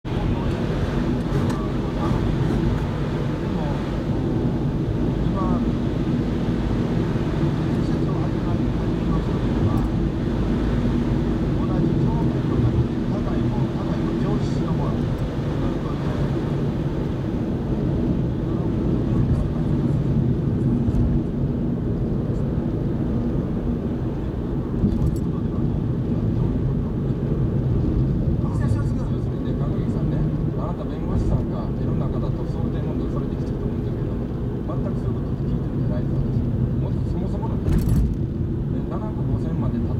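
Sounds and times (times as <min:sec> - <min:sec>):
car engine drone: 0:00.0 - 0:39.9
tyres on snowy road: 0:00.1 - 0:39.9.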